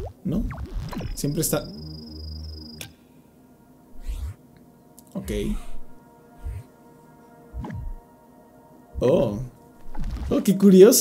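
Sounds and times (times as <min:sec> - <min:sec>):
low buzzing hum: 0:00.0 - 0:10.4
thin high whine: 0:00.6 - 0:03.2, 0:03.9 - 0:04.6, 0:05.2 - 0:06.8, 0:07.5 - 0:08.1.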